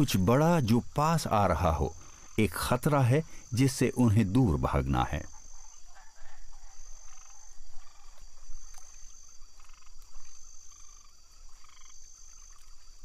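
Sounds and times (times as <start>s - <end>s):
frogs croaking: 0.0s - 13.0s
high-pitched insect trill: 0.0s - 13.0s.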